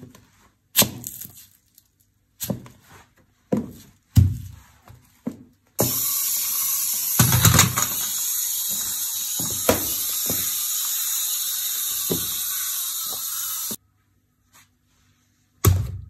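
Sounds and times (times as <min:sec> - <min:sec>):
buzzing drill-like hiss: 0:05.8 - 0:13.8.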